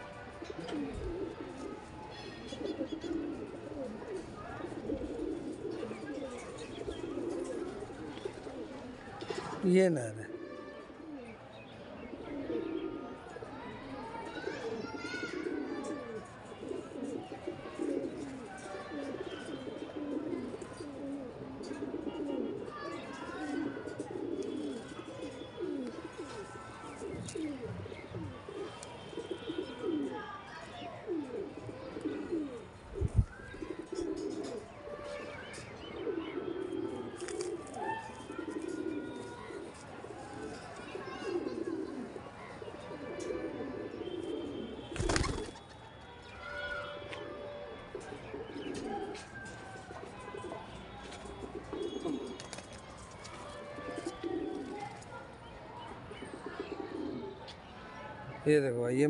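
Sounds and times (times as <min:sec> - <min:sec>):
pigeons cooing: 0:00.0 - 0:09.1, 0:10.2 - 0:34.8, 0:35.6 - 0:45.6, 0:47.2 - 0:50.6, 0:51.3 - 0:52.6, 0:53.8 - 0:55.0, 0:56.1 - 0:57.4
wings fluttering: 0:45.0 - 0:45.6.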